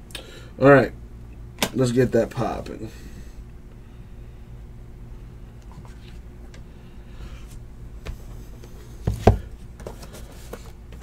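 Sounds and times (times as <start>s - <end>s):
cardboard box knocking on table: 9.1s - 9.5s.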